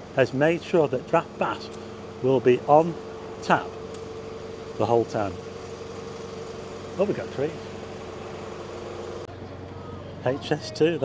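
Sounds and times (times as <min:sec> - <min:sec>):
street noise: 0:00.0 - 0:11.0
vehicle engine idling: 0:00.0 - 0:11.0.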